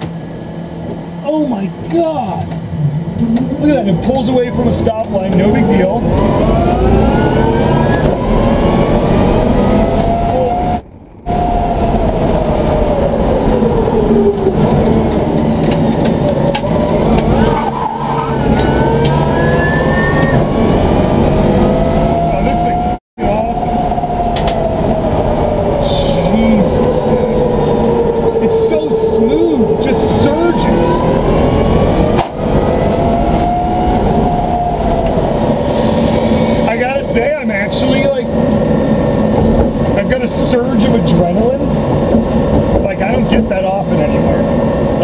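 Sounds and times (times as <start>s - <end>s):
road and tyre noise: 0.0s - 45.0s
electric motors whining: 3.2s - 36.8s.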